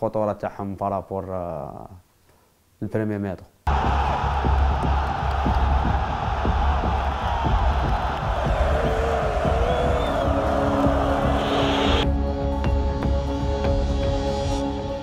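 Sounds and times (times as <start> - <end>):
crowd roaring: 3.7 - 12.0.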